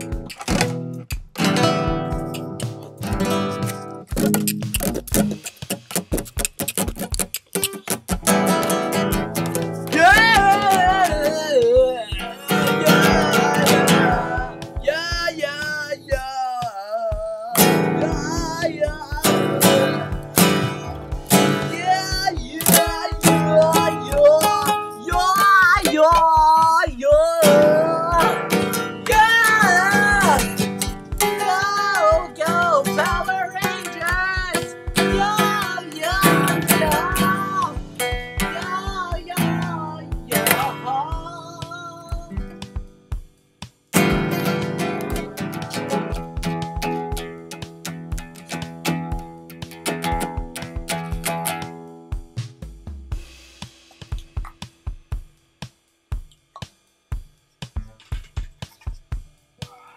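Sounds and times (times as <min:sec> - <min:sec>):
acoustic guitar strummed: 0:00.0 - 0:55.3, 0:56.1 - 0:59.4
person singing: 0:08.5 - 0:42.6, 0:44.0 - 0:47.0.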